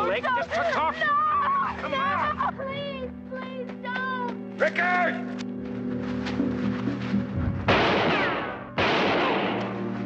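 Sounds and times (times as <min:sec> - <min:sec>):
dramatic music score: 0:00.0 - 0:10.0
echoing gunshots: 0:07.7 - 0:09.8.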